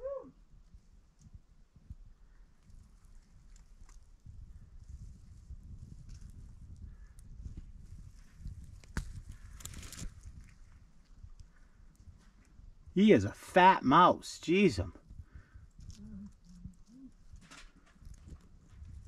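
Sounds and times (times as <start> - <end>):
camera handling rumble and rustling: 7.6 - 10.8, 17.2 - 19.0.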